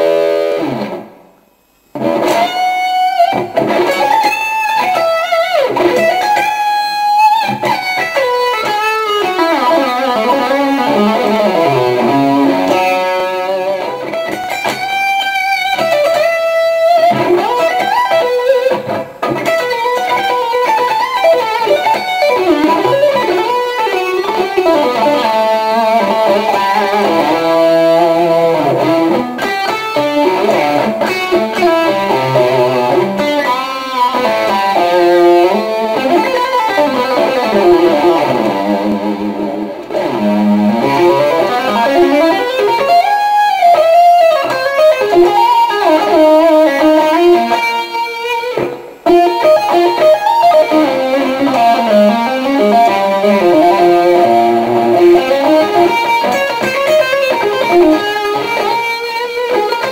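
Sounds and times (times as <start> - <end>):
electric guitar lead lines: 0.0 - 59.9.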